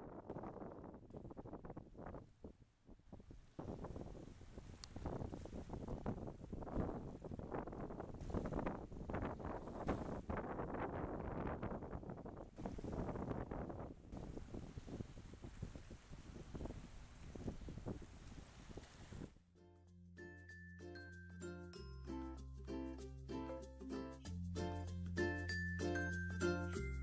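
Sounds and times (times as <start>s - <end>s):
wind buffeting microphone: 0.0s - 19.4s
small waves lapping on sand: 12.6s - 13.2s, 14.1s - 19.3s.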